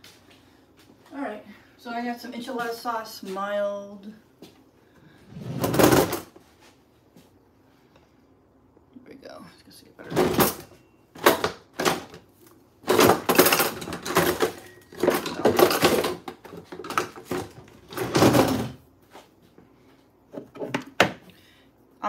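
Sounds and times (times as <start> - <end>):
kitchen items clattering: 5.4 - 6.4, 10.0 - 12.2, 12.8 - 18.8.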